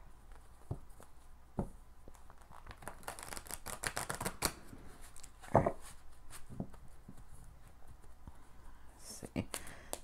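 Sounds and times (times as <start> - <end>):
cards being riffled: 2.3 - 4.6.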